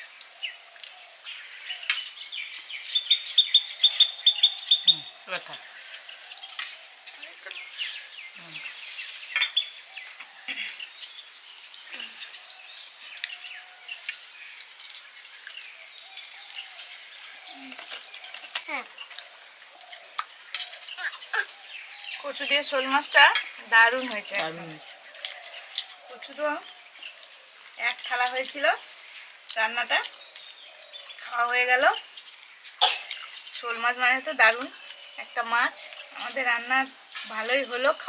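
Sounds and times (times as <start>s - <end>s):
small bird chirping: 0.0s - 38.0s.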